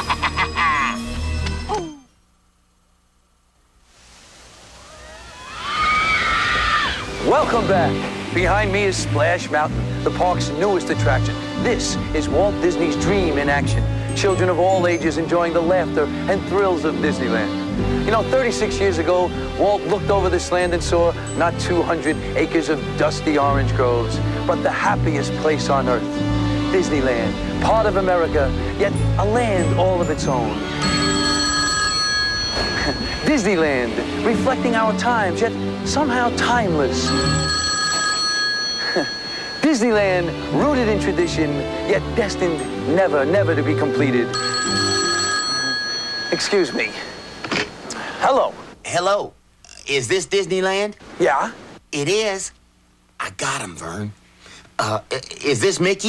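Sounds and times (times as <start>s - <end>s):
man laughing: 0.0s - 1.0s, 32.6s - 33.3s, 38.8s - 39.2s
group of riders screaming: 4.8s - 7.2s
water rushing and splashing: 5.9s - 10.2s
telephone ringing: 30.7s - 33.6s, 37.0s - 40.0s, 44.3s - 47.8s.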